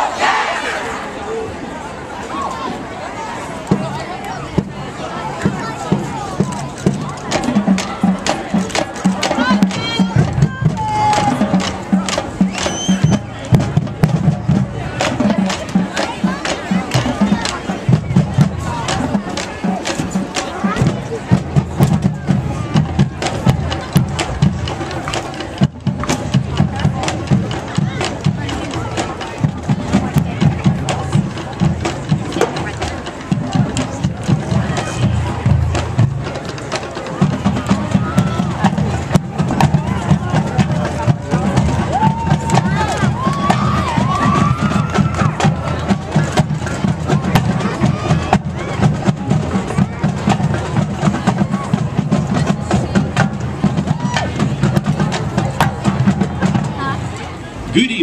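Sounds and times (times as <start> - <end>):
crowd chatter: 0.0 - 58.0
marching band percussion beat: 5.4 - 57.0, 57.7 - 58.0.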